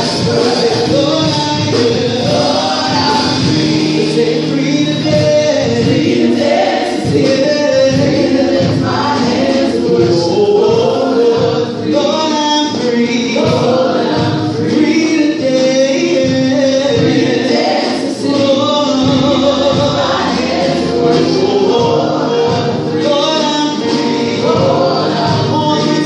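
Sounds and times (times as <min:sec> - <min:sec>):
gospel vocal group singing: 0:00.0 - 0:26.0.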